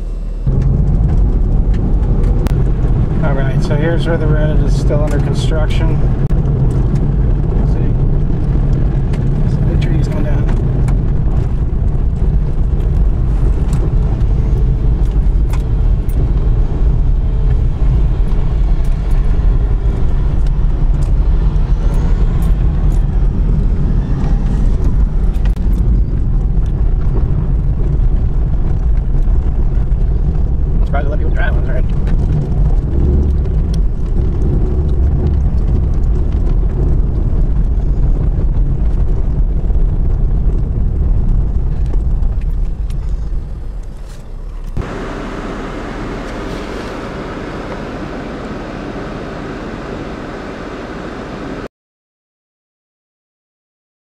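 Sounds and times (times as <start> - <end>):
vehicle driving on gravel road: 0.0 - 51.7.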